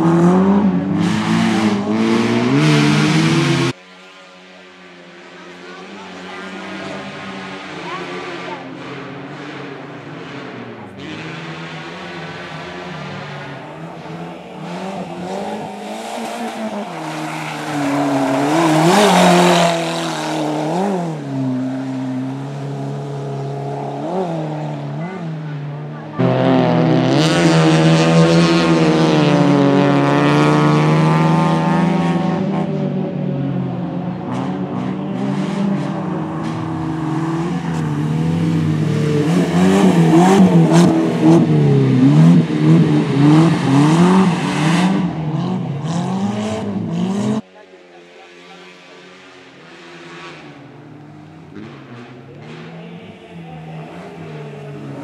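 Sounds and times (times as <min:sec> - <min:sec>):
car engine revving hard: 0:00.0 - 0:03.8, 0:05.7 - 0:47.5.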